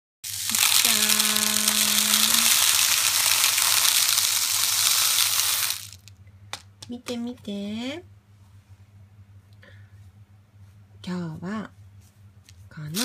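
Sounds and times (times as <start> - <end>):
plastic pellets pouring into tub: 0.2 - 6.1.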